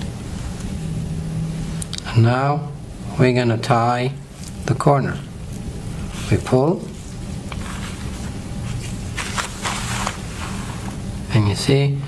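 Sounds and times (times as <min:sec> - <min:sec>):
steady low hum: 0:00.0 - 0:12.0
rustling scrapes: 0:06.1 - 0:11.0.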